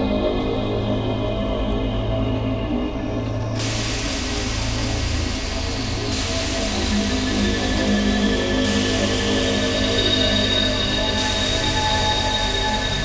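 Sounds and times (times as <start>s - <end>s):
sustained low drones: 0.0s - 13.0s.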